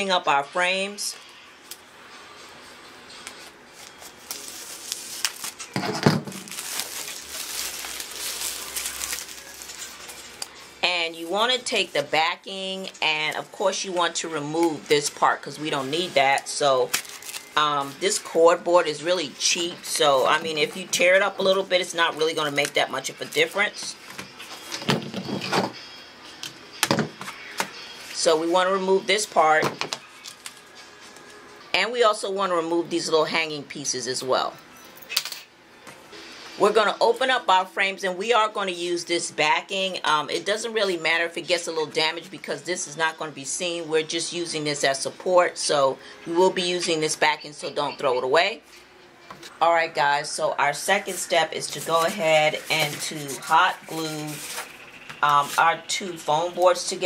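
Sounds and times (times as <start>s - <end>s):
plastic wrap crinkling and tearing: 3.8s - 10.6s, 16.9s - 17.6s.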